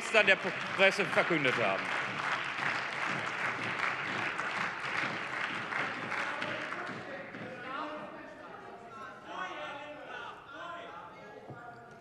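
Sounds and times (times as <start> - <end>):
applause in chamber: 0.0 - 7.6.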